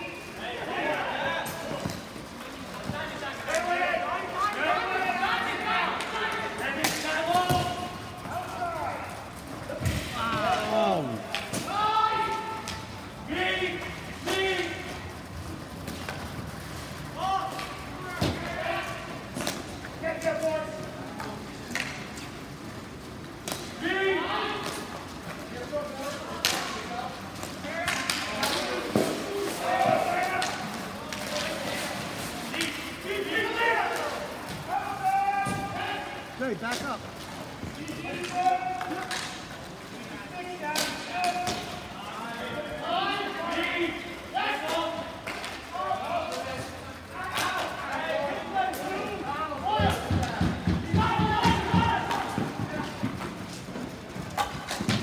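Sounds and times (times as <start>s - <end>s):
voices calling and shouting: 0.0s - 55.0s.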